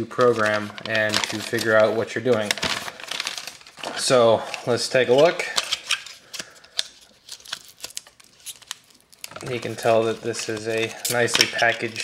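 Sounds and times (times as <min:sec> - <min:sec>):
cardboard packaging clicks and rustles: 0:00.0 - 0:12.0.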